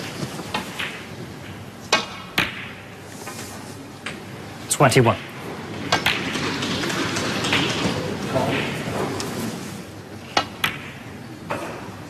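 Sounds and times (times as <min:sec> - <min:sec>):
snooker balls clicking: 0:05.8 - 0:09.4.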